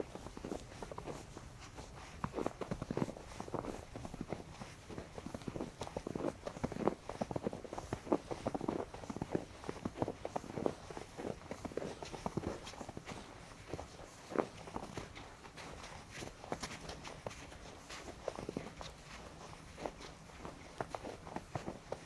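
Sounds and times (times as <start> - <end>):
footsteps crunching in snow: 0.0 - 22.0.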